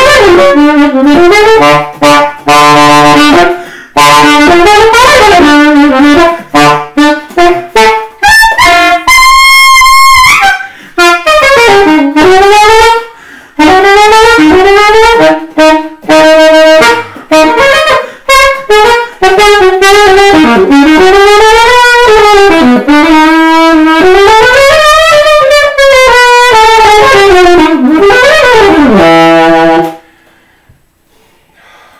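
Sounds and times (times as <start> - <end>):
solo alto saxophone jazz: 0.0 - 30.6.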